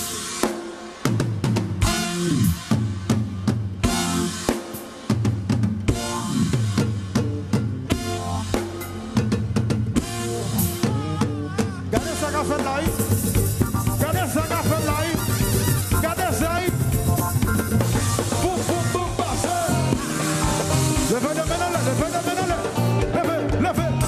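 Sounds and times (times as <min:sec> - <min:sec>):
live band playing: 0:00.0 - 0:24.0
deep bass line: 0:05.8 - 0:24.0.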